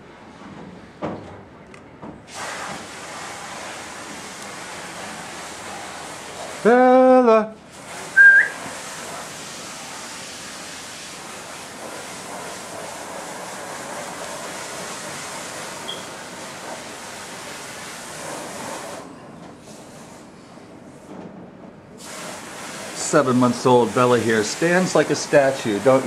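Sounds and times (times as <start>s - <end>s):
person whistling: 8.2s - 8.6s.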